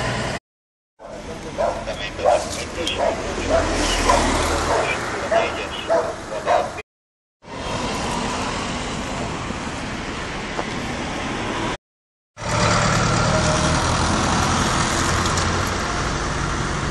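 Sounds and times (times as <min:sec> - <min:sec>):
cars passing: 0:01.0 - 0:06.8, 0:07.4 - 0:11.8, 0:12.4 - 0:16.9
vehicle engine humming: 0:01.0 - 0:06.8.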